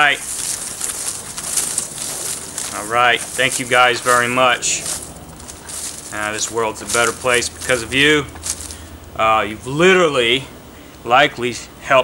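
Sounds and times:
paper tickets rustling in a hat: 0:00.0 - 0:08.8.

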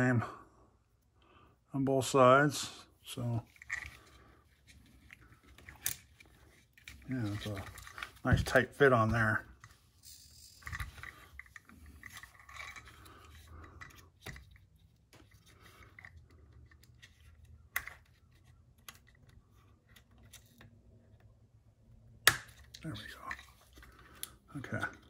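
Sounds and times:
small plastic parts rattling: 0:03.2 - 0:20.8.

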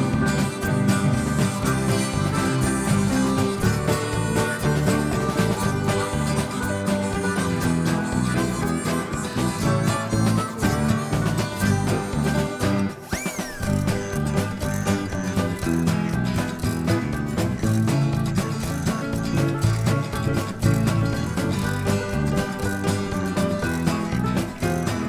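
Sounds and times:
country music with plucked strings: 0:00.0 - 0:25.0.

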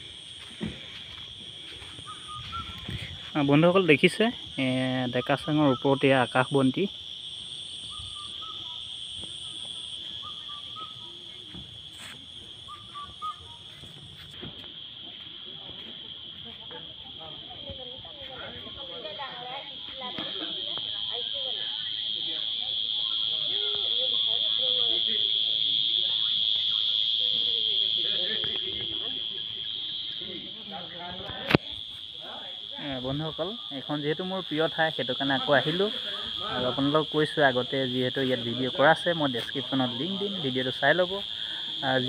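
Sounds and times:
insects droning: 0:00.0 - 0:42.0.

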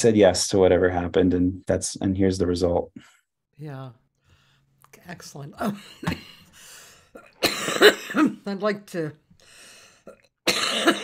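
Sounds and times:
woman coughing: 0:05.6 - 0:06.5, 0:07.1 - 0:08.5, 0:10.1 - 0:11.0.

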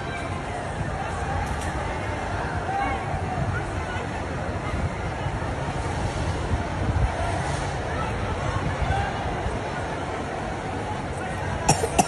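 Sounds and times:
faint distant voices: 0:00.0 - 0:12.0
wind buffeting microphone: 0:00.0 - 0:12.0.

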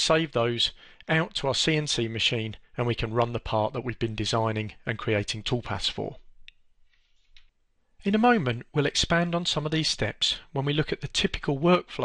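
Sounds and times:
person speaking: 0:00.0 - 0:06.7, 0:08.0 - 0:12.0.

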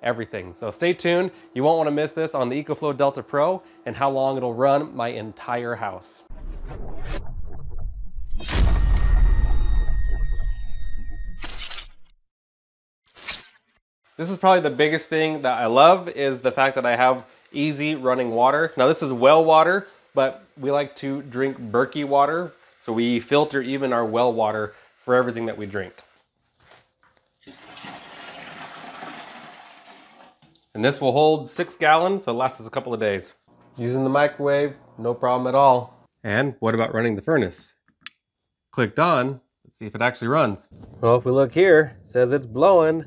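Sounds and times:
water pouring into metal chamber: 0:14.2 - 0:26.1, 0:27.4 - 0:30.6.

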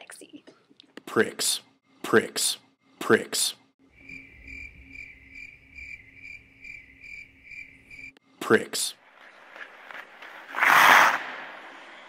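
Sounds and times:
cricket chirping: 0:03.8 - 0:08.2.

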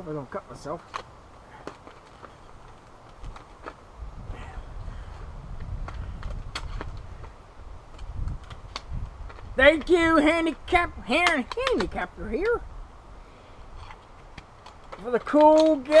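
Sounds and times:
sharp clicks: 0:11.1 - 0:12.6.

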